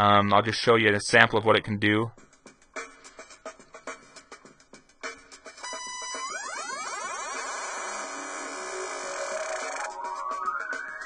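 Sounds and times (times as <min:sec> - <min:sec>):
synthesizer sweep: 0:05.6 - 0:11.0.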